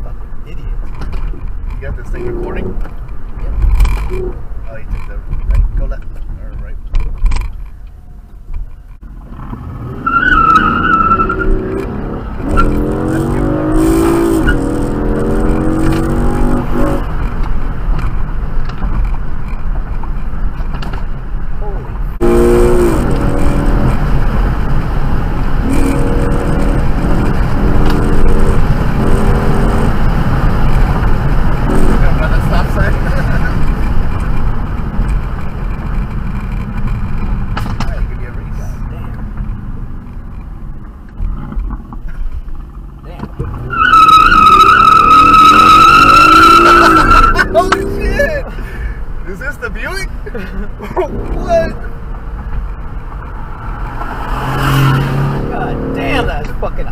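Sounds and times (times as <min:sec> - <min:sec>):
road rumble: 0:00.0 - 0:56.9
car engine accelerating hard: 0:09.2 - 0:17.9, 0:22.1 - 0:40.2, 0:42.6 - 0:48.5, 0:50.7 - 0:56.9.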